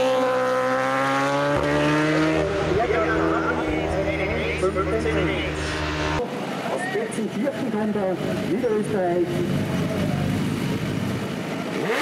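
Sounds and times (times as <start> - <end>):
racing motorcycle engine: 0.0 - 6.4, 7.6 - 12.0
voices: 2.1 - 10.6.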